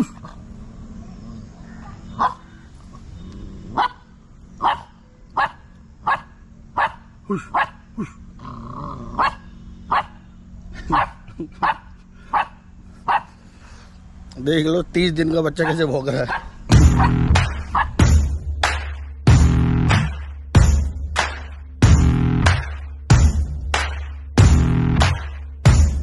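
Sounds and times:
puppy barking: 0:01.7 - 0:02.5, 0:03.7 - 0:07.9, 0:09.2 - 0:10.2, 0:10.8 - 0:13.4, 0:15.6 - 0:18.0.

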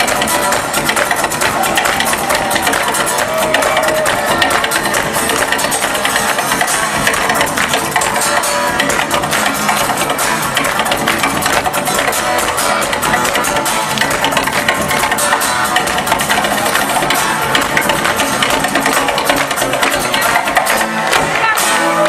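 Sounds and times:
acoustic guitars strumming fast: 0:00.0 - 0:22.0.

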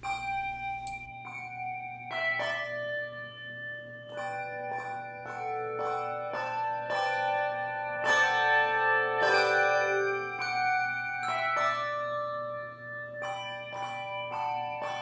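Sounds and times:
handbells ringing a melody: 0:00.0 - 0:15.0.

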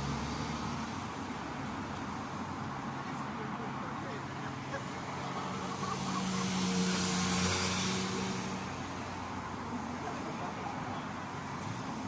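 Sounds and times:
vehicles driving past: 0:00.0 - 0:12.0.

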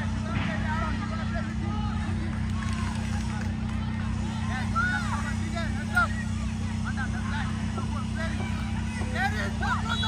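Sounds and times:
low mechanical hum: 0:00.0 - 0:10.0
players shouting and calling: 0:00.0 - 0:10.0.

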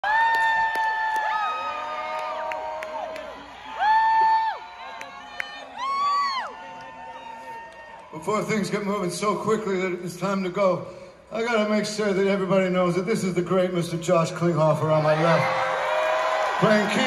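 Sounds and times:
crowd cheering: 0:00.0 - 0:09.0, 0:15.0 - 0:17.0.

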